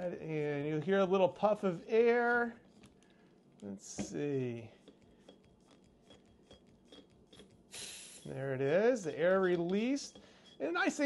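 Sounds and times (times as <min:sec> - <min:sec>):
small clicks and rubbing: 0:00.7 - 0:07.7.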